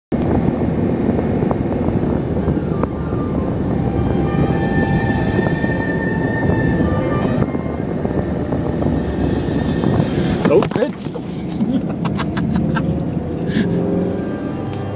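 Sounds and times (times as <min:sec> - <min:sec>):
car road and engine rumble: 0:00.1 - 0:14.9.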